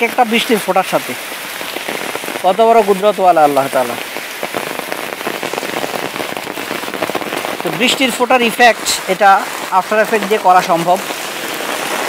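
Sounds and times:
rain on pavement: 0.0s - 12.0s.

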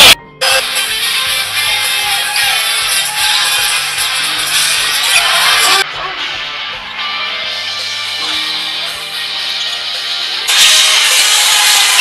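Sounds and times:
arena crowd roar: 4.9s - 7.0s.

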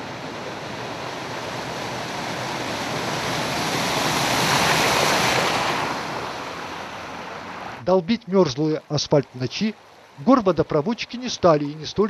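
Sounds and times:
car splashing through floodwater: 0.0s - 12.0s.

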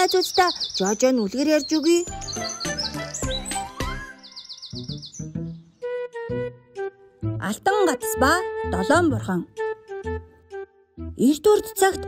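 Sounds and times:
high bird-like chirps: 0.0s - 5.9s.

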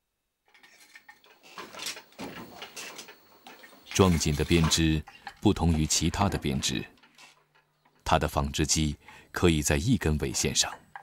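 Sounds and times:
wooden loom clacking: 0.5s - 11.0s.

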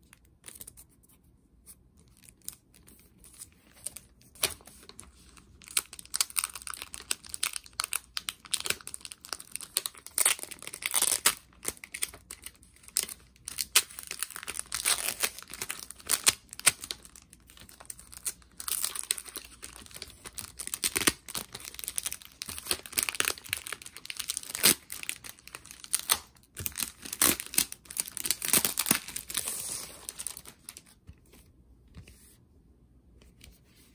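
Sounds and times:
plastic wrap crinkling: 4.4s - 31.0s.

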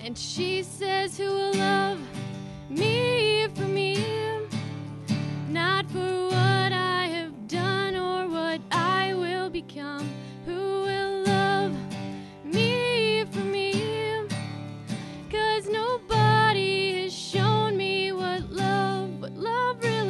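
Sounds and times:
acoustic guitar strumming chords: 0.0s - 20.0s
person singing: 15.3s - 20.0s.

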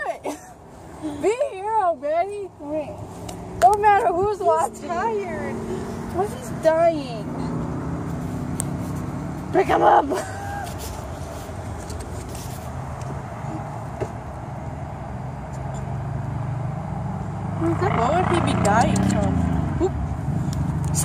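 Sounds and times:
vehicle engine rumbling: 0.0s - 21.0s
murmured voices and laughter: 9.5s - 11.0s.

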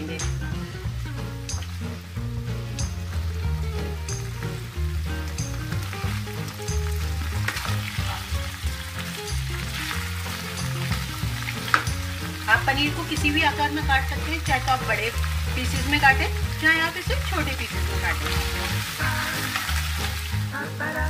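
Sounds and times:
background music with bass beat: 0.0s - 21.0s
paneer sizzling in oil: 0.0s - 21.0s
spatula stirring in pan: 5.8s - 20.3s.

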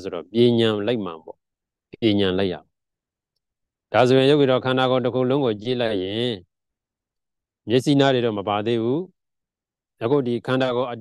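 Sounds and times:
man speaking: 0.0s - 2.7s, 3.9s - 6.5s, 10.0s - 11.0s.

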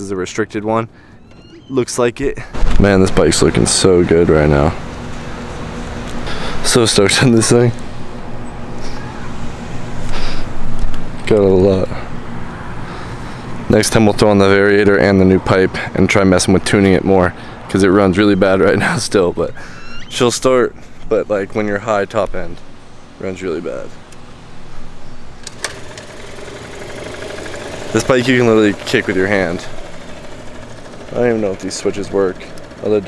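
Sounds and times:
kick-start clacks: 25.4s - 33.0s
scooter engine idling: 25.4s - 33.0s.

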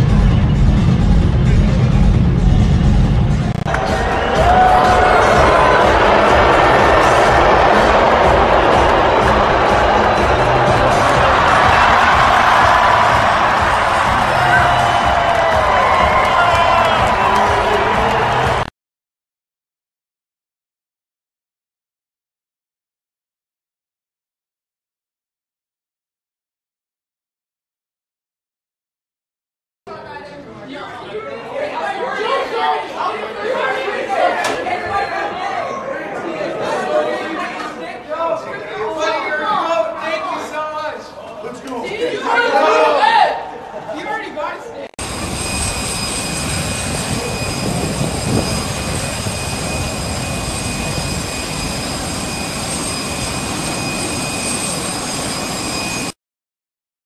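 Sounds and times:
jet turbine rush and whine: 0.6s - 18.7s, 45.0s - 56.2s
chatter of many voices: 29.9s - 44.9s.

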